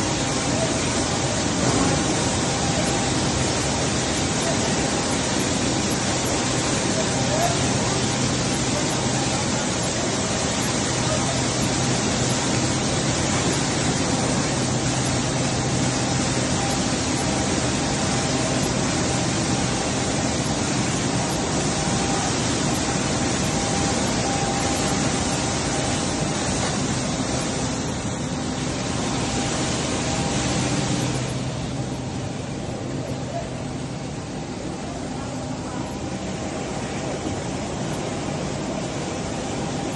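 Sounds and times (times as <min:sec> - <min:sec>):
machinery running: 0:00.0 - 0:39.9.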